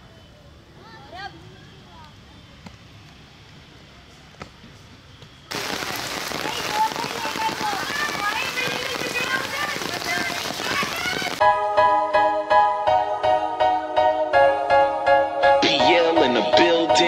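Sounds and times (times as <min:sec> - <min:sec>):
rain falling: 0:05.5 - 0:11.4
music track: 0:11.4 - 0:17.0.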